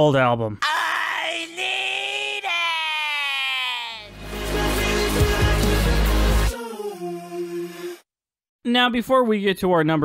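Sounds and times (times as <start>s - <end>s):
cartoon voice high-pitched scream: 0.6s - 4.2s.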